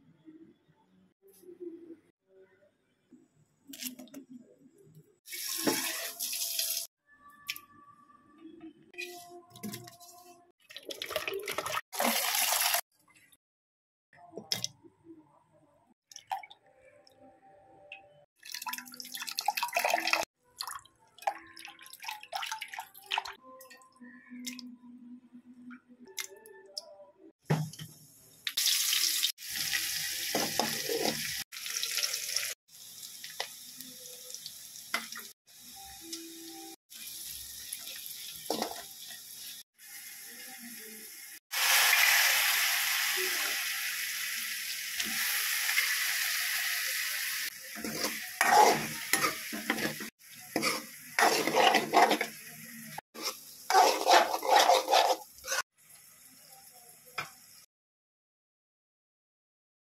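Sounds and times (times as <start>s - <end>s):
shallots sizzling in hot oil: 28.6s - 36.2s, 36.9s - 57.6s.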